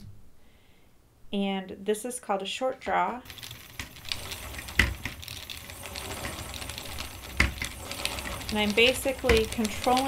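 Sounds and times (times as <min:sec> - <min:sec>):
spinning wheel rumbling: 0:03.3 - 0:10.0
wooden knocks: 0:03.8 - 0:05.3, 0:07.2 - 0:08.5.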